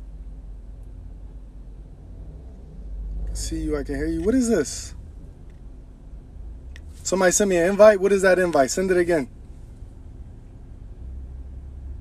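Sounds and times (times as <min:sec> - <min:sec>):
low hum in car cabin: 0:00.0 - 0:12.0.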